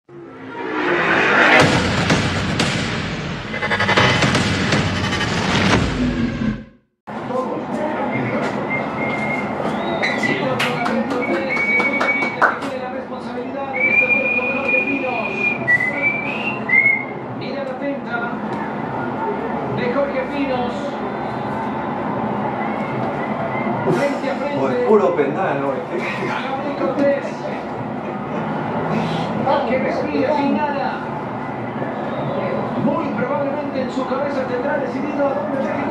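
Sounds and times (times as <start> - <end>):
stadium crowd: 7.1 - 12.9, 20.9 - 24.4, 26.8 - 30.2, 31.0 - 34.7
referee whistles: 8.1 - 10.4, 13.7 - 17.2.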